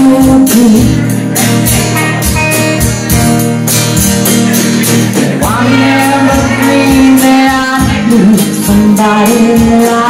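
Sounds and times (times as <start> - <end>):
drums with cymbal hits: 0.0 - 10.0
electric guitar: 0.0 - 10.0
strummed acoustic guitar: 0.0 - 10.0.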